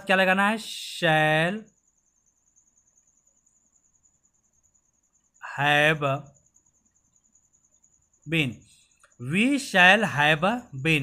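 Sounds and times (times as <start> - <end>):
cricket chirping: 0.0 - 11.0.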